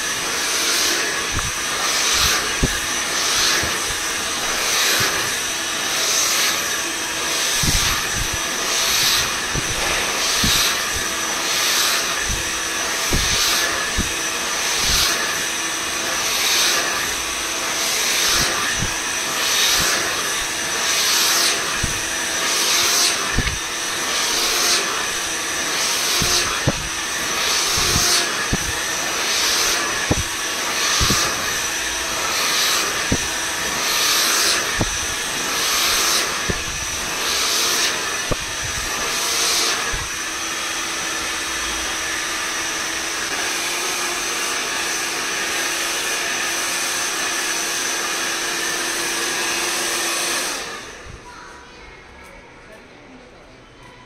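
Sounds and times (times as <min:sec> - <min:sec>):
brush through hair: 0:00.0 - 0:17.1, 0:17.8 - 0:40.0
hair dryer running: 0:00.0 - 0:51.2.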